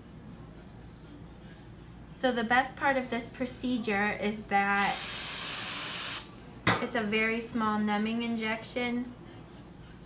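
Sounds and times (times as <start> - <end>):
aerosol spray hissing: 4.8 - 6.3.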